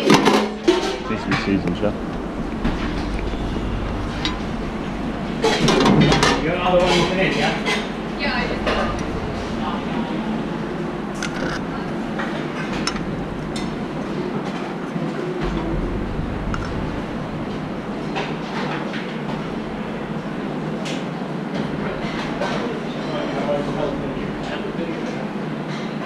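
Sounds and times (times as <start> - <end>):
indistinct voices: 0.0 - 20.8
steady rumbling: 0.0 - 25.4.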